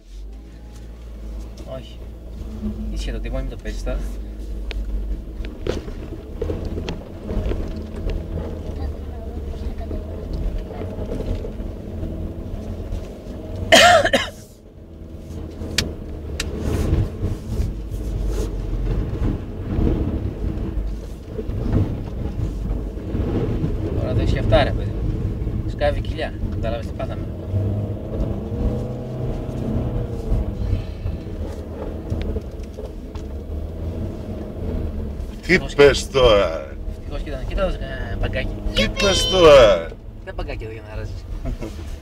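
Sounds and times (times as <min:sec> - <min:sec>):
car engine under load: 0:00.0 - 0:42.0
person exclaiming: 0:38.7 - 0:40.0.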